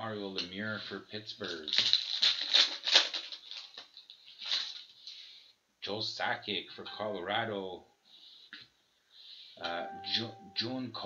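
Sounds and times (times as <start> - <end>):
foil wrapper crinkling and tearing: 1.3 - 5.2.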